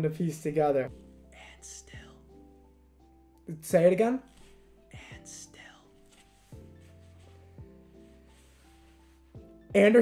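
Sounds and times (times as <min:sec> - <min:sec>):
lo-fi background music: 0:00.0 - 0:10.0.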